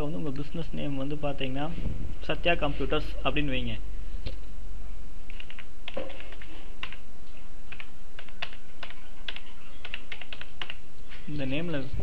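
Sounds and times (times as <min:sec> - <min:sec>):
computer keyboard typing: 0:05.3 - 0:07.1, 0:07.7 - 0:10.8.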